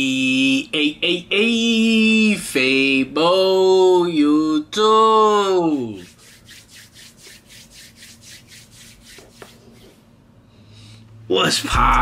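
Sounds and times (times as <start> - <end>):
palms rubbing together: 5.6 - 10.1.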